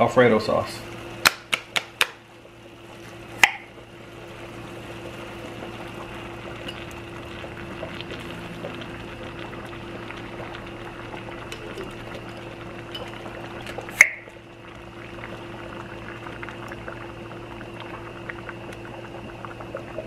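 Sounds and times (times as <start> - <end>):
bubbling hiss from pot: 0.0 - 20.0.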